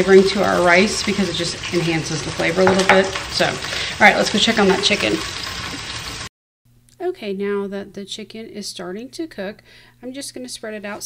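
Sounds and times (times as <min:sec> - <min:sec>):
chicken sizzling in a hot pot: 0:00.0 - 0:06.3.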